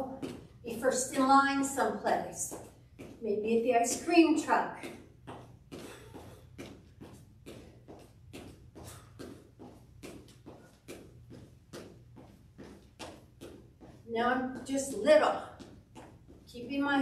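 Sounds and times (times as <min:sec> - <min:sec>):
sneakers on hardwood floor: 0:00.0 - 0:17.0.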